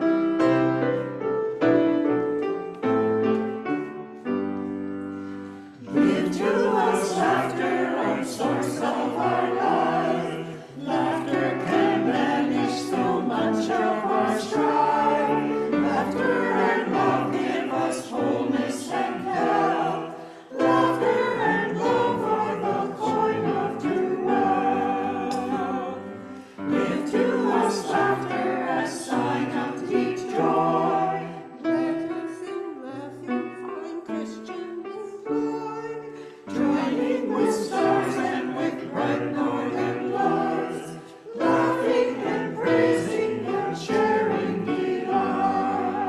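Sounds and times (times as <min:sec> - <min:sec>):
church choir singing: 0:00.0 - 0:46.0.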